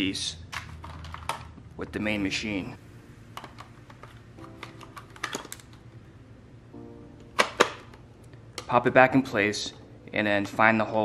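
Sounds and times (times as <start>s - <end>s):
soft background music: 1.7s - 11.0s.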